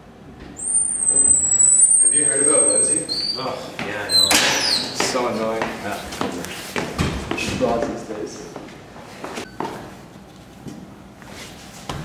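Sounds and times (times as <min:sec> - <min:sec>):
door closer high squeal: 0:00.6 - 0:05.0.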